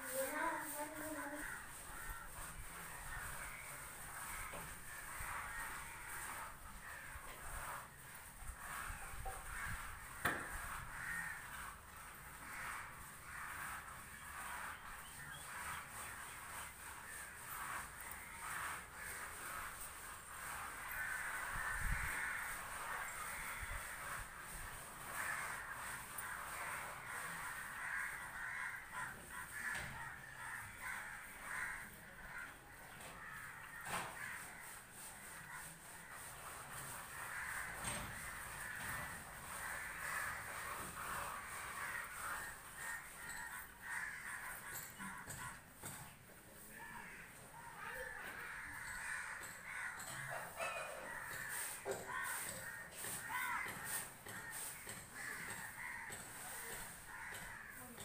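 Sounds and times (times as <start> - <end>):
crows cawing: 0.2 - 14.7, 16.8 - 46.0, 46.6 - 58.0.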